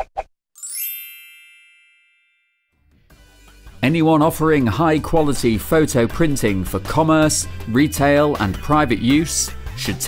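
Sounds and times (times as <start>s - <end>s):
bell-like logo chime: 0.6s - 2.8s
low background music: 2.9s - 10.0s.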